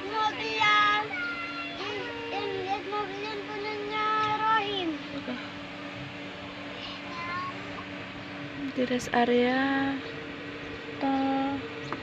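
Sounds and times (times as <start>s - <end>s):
child singing a long note: 0.0s - 5.0s
steady low hum: 0.0s - 12.0s.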